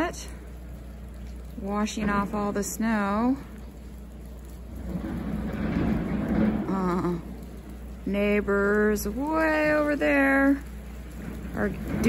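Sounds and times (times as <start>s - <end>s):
distant earthmoving machinery rumble: 0.0s - 12.0s.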